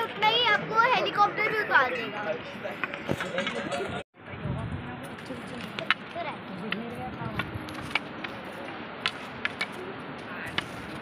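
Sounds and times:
walking sticks tapping on stone: 5.1s - 11.0s.

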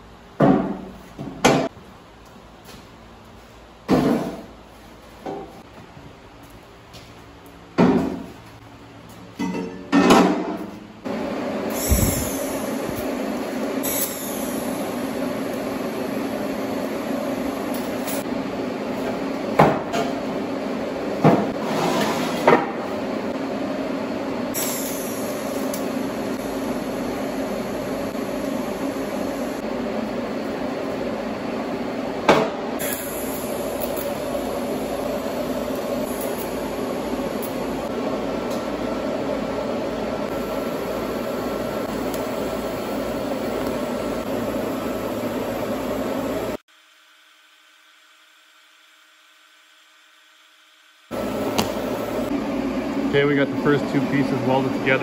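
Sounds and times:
welder and water cooler humming: 0.0s - 55.0s.

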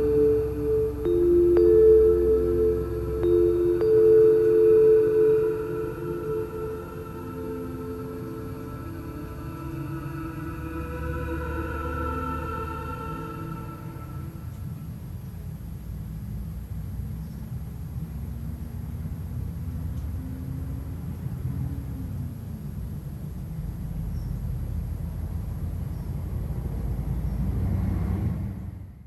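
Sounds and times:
music notes: 0.0s - 14.8s
faint wavering tone: 0.0s - 15.1s
low rumbling drone: 0.0s - 15.3s.

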